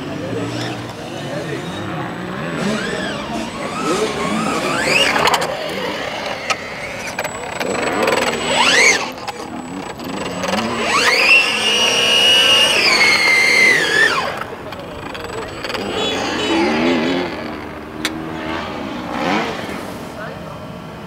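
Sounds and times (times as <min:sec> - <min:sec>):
rc car electric motor whining: 0:00.0 - 0:20.2.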